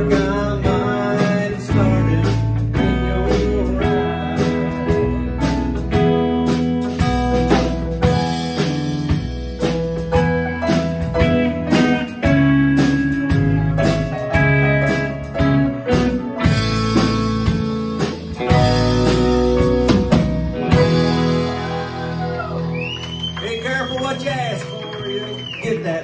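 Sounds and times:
acoustic guitar: 0:00.0 - 0:24.0
drums: 0:00.0 - 0:26.0
electric guitar: 0:00.0 - 0:26.0
keyboard: 0:00.0 - 0:26.0.

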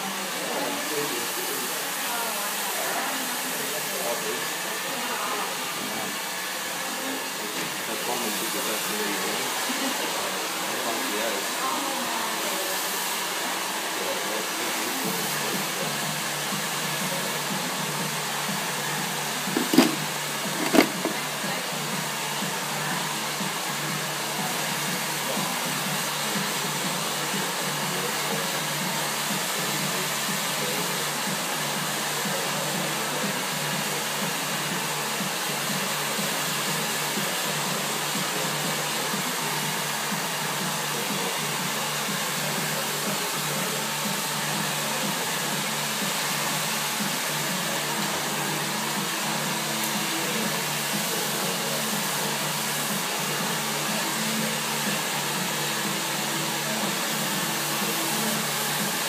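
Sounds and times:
hair dryer running: 0:00.0 - 0:59.0.

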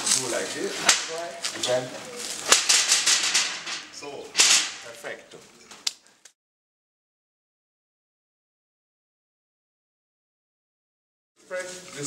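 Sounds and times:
shutter slats rattling: 0:02.4 - 0:04.9
window shutter clacking open: 0:02.5 - 0:04.8.

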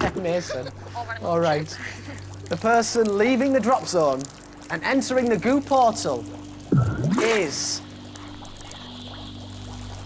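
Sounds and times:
low suspense drone: 0:06.2 - 0:10.0.

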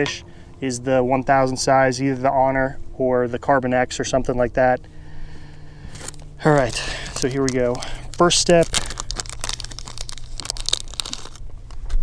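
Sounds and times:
plastic packet crinkling: 0:05.9 - 0:12.0.

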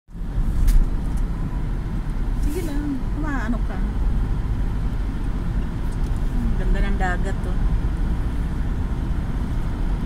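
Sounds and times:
car road and engine rumble: 0:00.1 - 0:10.0.

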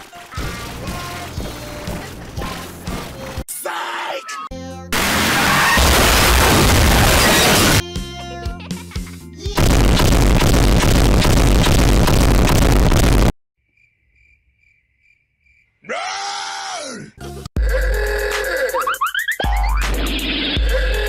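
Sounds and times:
children's song: 0:00.0 - 0:05.0, 0:07.6 - 0:09.7
loud distorted noise blast: 0:05.0 - 0:07.8, 0:09.6 - 0:13.3
groan-like sound effect: 0:15.9 - 0:18.8.

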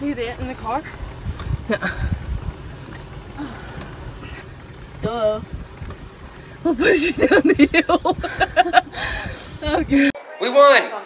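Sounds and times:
golf cart tyres rumbling: 0:00.0 - 0:10.1
wind on microphone: 0:00.0 - 0:10.1.

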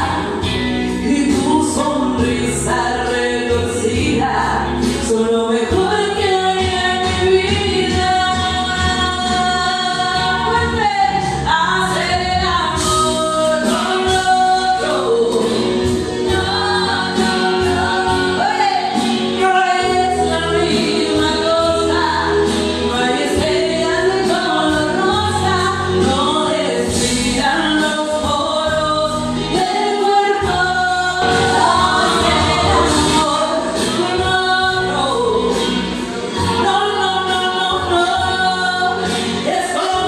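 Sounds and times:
karaoke backing track: 0:00.0 - 0:40.0
woman singing into microphone: 0:00.0 - 0:40.0.

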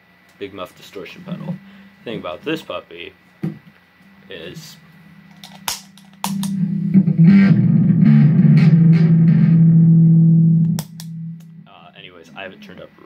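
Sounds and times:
distorted electric bass: 0:04.2 - 0:13.0.

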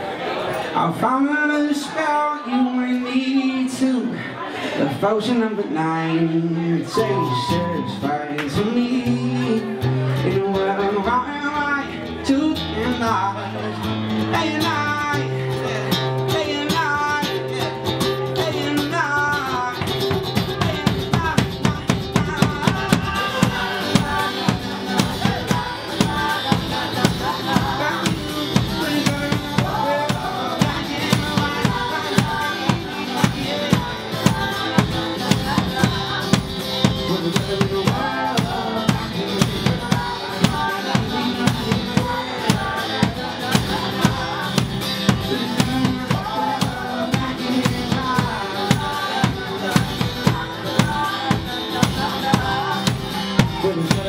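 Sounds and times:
person singing: 0:01.0 - 0:54.0
acoustic guitar strumming: 0:06.4 - 0:54.0
large drum beat: 0:19.8 - 0:54.0.

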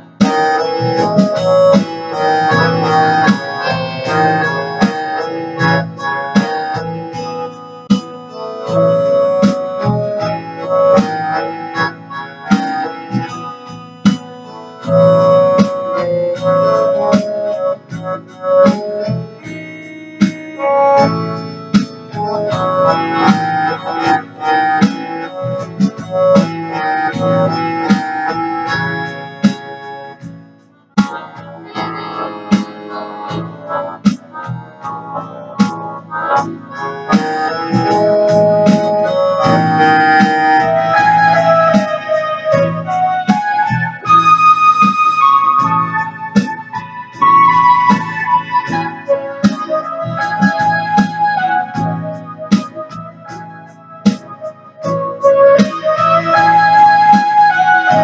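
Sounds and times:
electronic keyboard melody: 0:00.0 - 0:58.0.

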